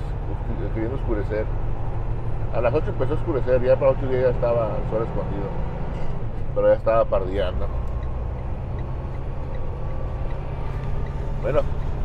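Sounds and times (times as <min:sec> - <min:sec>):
diesel truck engine drone: 0:00.0 - 0:12.0
road noise: 0:00.0 - 0:12.0.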